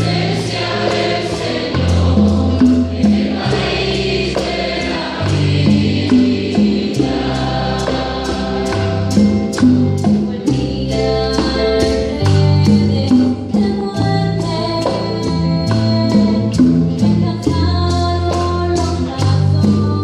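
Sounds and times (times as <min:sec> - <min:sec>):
group singing a hymn: 0:00.0 - 0:12.4
low bass notes: 0:00.0 - 0:20.0.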